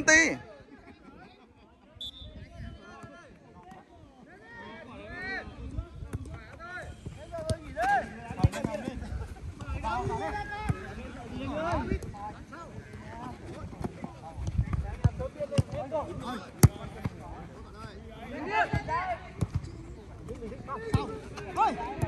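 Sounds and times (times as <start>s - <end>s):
players shouting: 20.4s - 22.0s.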